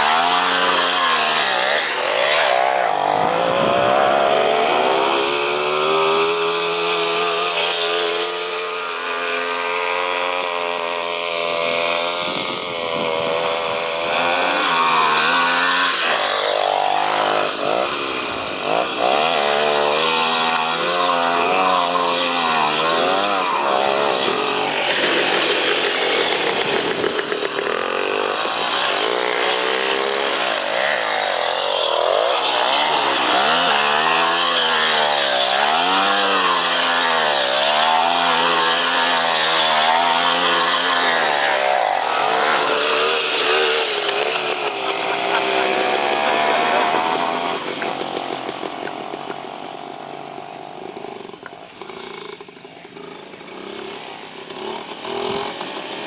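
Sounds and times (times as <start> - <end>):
two-stroke motorcycle engine revving: 0.0 - 56.0.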